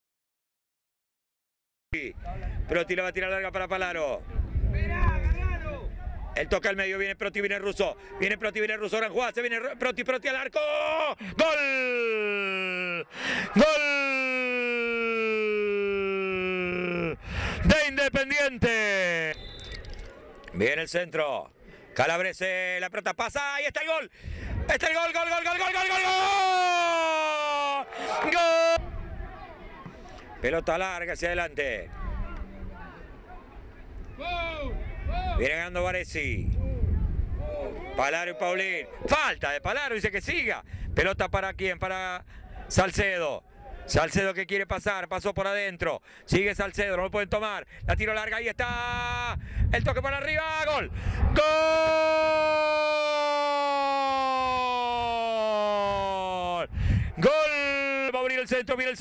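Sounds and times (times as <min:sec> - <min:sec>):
commentator shouting goal: 0:10.3 - 0:19.3, 0:24.7 - 0:28.8, 0:50.0 - 0:58.4.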